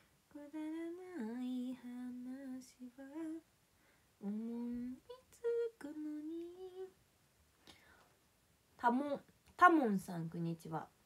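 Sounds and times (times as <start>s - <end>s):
woman humming: 4.2s - 6.9s.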